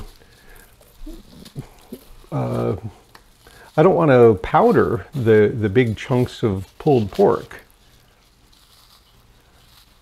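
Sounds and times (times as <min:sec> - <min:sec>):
man making low voiced sound: 0:02.3 - 0:02.9.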